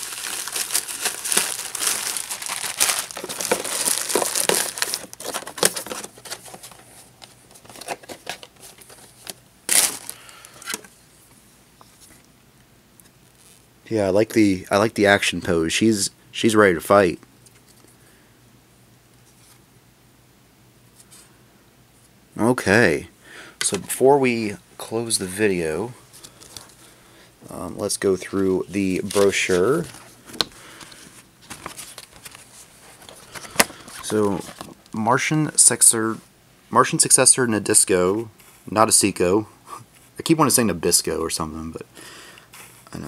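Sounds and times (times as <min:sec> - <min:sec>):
plastic packaging crinkling: 0:00.0 - 0:10.8, 0:28.9 - 0:34.9
low room hum: 0:00.0 - 0:43.0.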